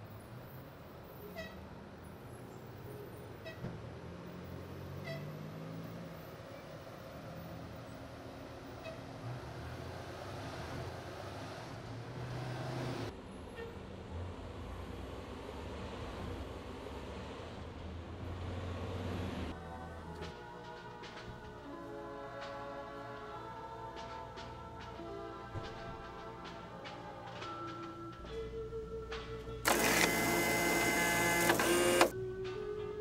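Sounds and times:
cars and trucks passing: 0.0 - 21.6
music: 19.5 - 33.0.

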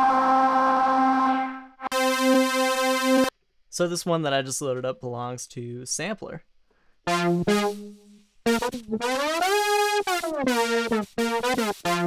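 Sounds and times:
bright synth note: 0.0 - 3.3, 7.1 - 12.0.

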